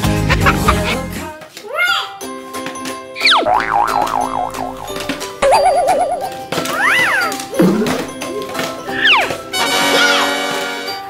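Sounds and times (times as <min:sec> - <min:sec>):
background music chords: 0:00.0 - 0:01.4, 0:02.3 - 0:11.0
wobbling boing tone: 0:03.2 - 0:06.2.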